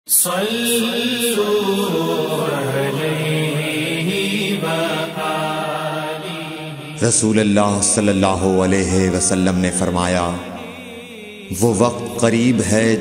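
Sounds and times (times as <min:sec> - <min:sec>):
person chanting melodically: 0:00.1 - 0:13.0.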